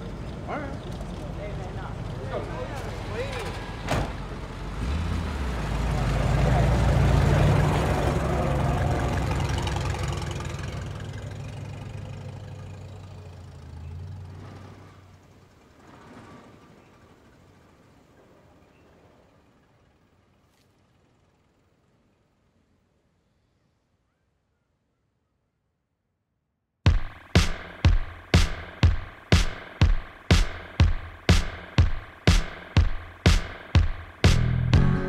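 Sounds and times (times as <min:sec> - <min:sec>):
car engine pulling away: 0:00.0 - 0:20.3.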